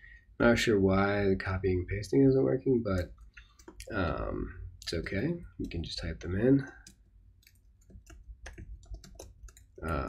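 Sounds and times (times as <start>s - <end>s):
keyboard typing clicks: 6.6s - 10.0s.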